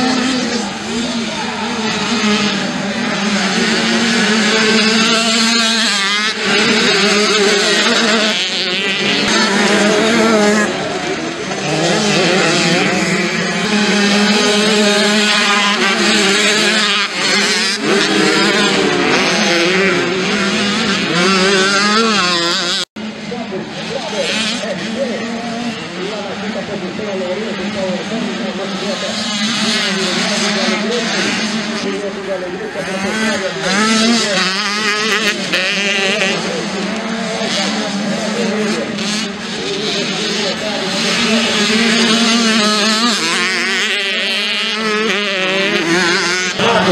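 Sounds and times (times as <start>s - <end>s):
dirt bike engines revving: 0.0s - 46.9s.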